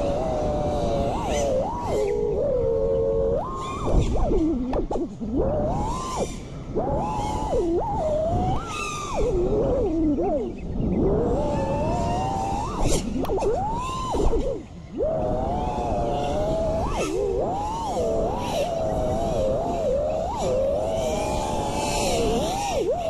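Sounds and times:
drone motors whining: 0.0 - 23.0.

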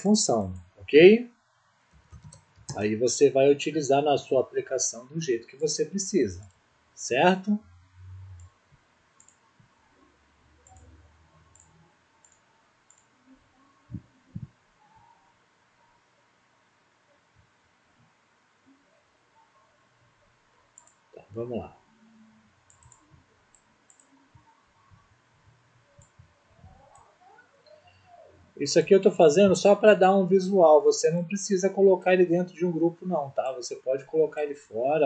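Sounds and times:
computer mouse clicks: 1.9 - 2.8, 9.2 - 9.7, 10.6 - 13.1, 20.8 - 21.0, 22.6 - 24.6, 25.9 - 28.2.

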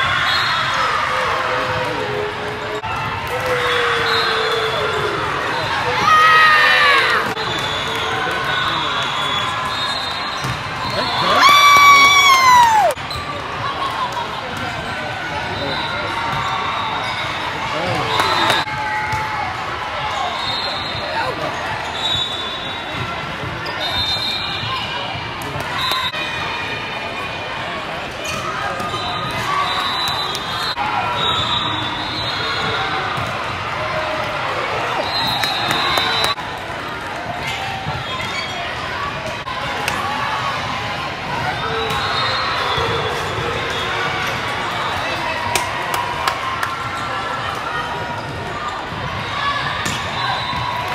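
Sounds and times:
spectators talking: 3.7 - 50.9.

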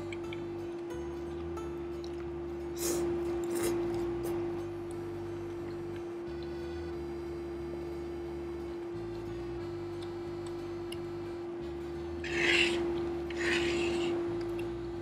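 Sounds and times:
soft background music: 0.0 - 15.0
fork and knife scraping plate: 12.3 - 14.2.

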